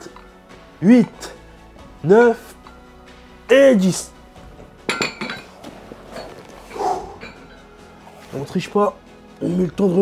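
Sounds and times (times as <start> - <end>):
dumbbell metal clink: 4.8 - 7.7.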